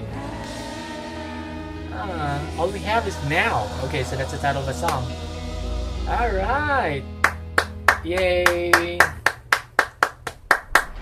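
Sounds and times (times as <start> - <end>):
person clapping hands: 7.2 - 11.0.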